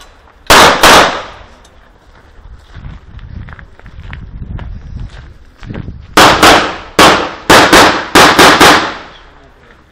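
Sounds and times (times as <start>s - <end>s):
handgun shots with echo: 0.5s - 1.4s, 6.2s - 9.2s.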